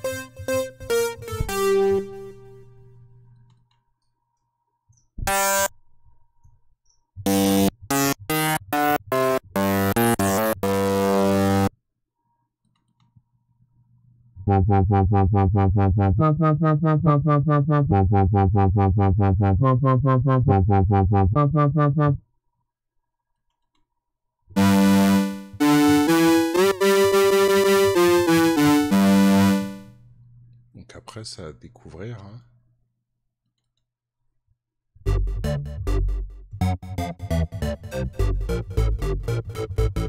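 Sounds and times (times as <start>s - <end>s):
synthesizer bass notes: 0.0s - 2.6s, 5.2s - 5.7s, 7.2s - 11.7s, 14.4s - 22.2s, 24.6s - 29.9s, 35.1s - 40.0s
pulsing synth bass pattern: 5.2s - 5.7s, 7.2s - 11.7s, 14.4s - 22.2s, 24.6s - 29.9s, 35.1s - 40.0s.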